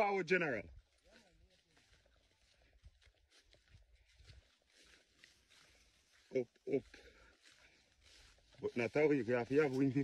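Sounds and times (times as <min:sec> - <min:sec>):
footsteps through grass: 0:00.0 - 0:10.0
grass and weeds brushing: 0:00.8 - 0:10.0.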